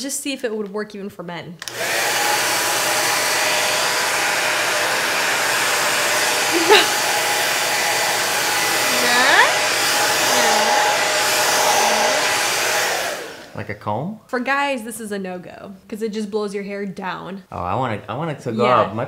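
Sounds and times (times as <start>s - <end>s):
hair dryer blowing: 1.6s - 13.6s.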